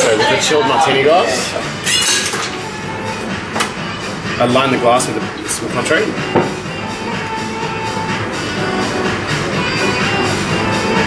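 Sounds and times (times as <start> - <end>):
background music: 0.0 - 11.0
busy room noise: 0.0 - 11.0.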